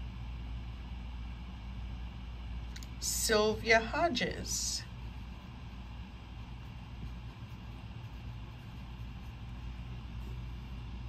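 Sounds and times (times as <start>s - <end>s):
low room tone hum: 0.0s - 11.0s.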